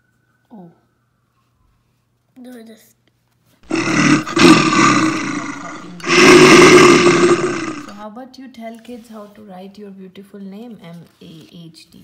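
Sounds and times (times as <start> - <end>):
animal roars: 3.7 - 8.0.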